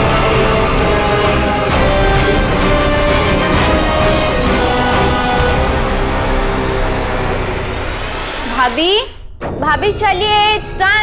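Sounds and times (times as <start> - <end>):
loud steady rushing noise: 0.0 - 9.0
background music: 0.0 - 11.0.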